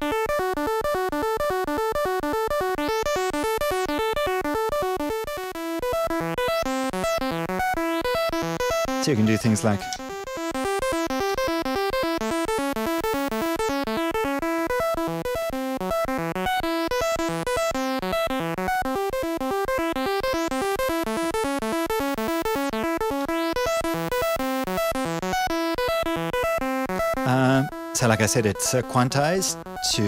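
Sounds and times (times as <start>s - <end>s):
synth looping fast note pattern: 0.0s - 30.0s.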